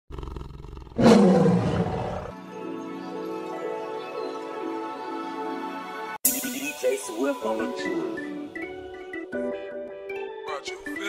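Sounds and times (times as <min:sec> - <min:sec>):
monster growling and roaring: 0:00.1 - 0:02.4.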